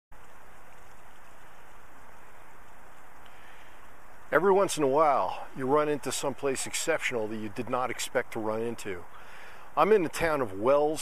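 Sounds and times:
running water rushing: 0.1 - 11.0.

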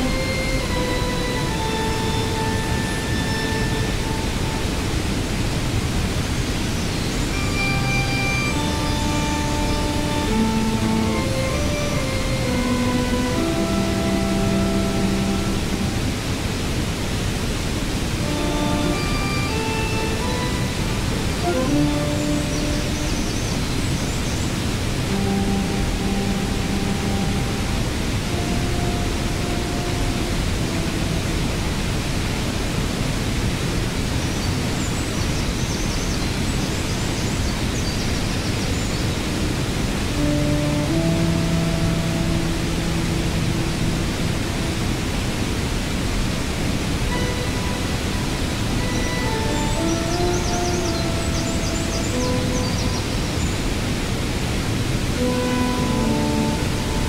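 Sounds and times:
held synthesizer notes: 0.0 - 5.3, 7.3 - 16.2, 18.2 - 23.7, 25.0 - 32.0, 40.0 - 44.9, 47.0 - 53.8, 55.1 - 57.0
waterfall rushing: 0.0 - 57.0.

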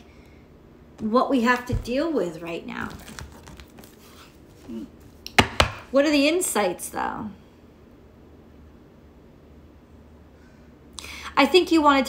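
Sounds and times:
sharp knocks on hard surface: 5.4 - 5.9.

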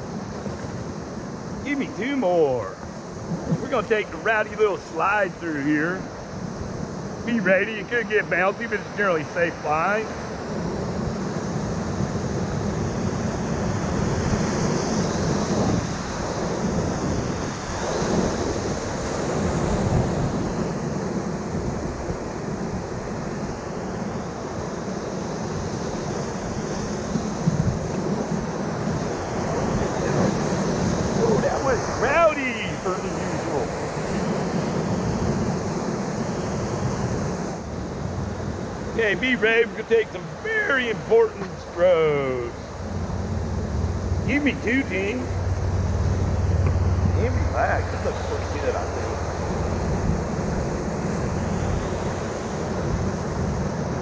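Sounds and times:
river rapids rushing: 0.0 - 6.4, 7.0 - 54.0.

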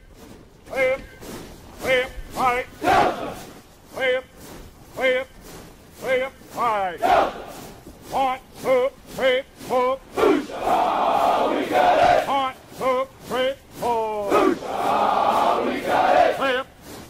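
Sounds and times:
men shouting sharp calls: 1.8 - 4.2, 6.0 - 16.6.

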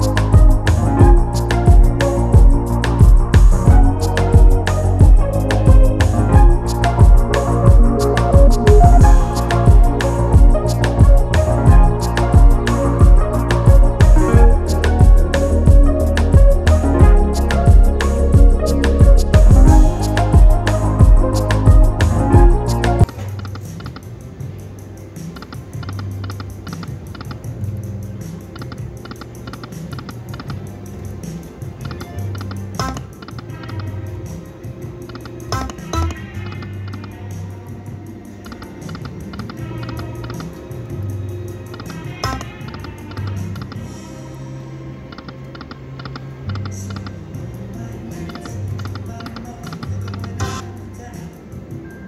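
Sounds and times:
low musical tones: 0.0 - 52.0.

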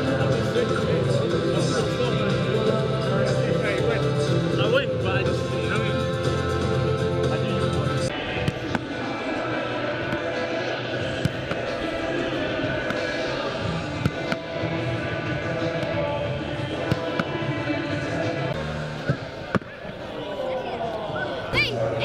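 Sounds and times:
music playing: 0.0 - 22.0
footballs struck and caught: 8.4 - 9.0, 10.1 - 10.4, 11.1 - 11.8, 12.8 - 13.3, 13.9 - 14.6, 16.8 - 17.4, 19.0 - 19.9.

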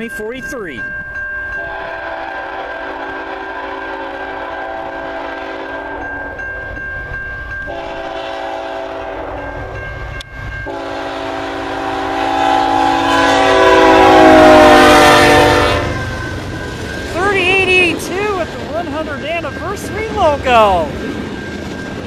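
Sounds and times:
train approaching: 0.0 - 22.0
locomotive horn blasts: 1.6 - 6.1, 7.7 - 9.5, 10.7 - 16.2.

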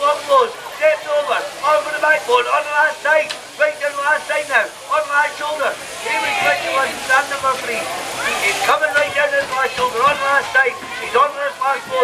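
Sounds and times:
commentator speaking excitedly: 0.0 - 12.0.

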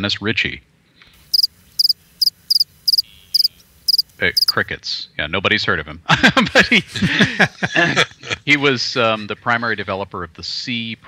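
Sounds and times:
crickets chirping: 1.2 - 4.6.

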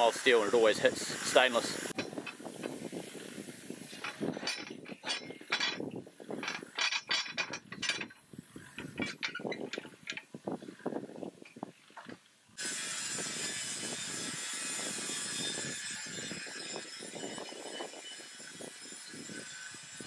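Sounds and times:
steady hiss: 0.0 - 4.3
metal parts knocking and clinking: 3.9 - 10.3.

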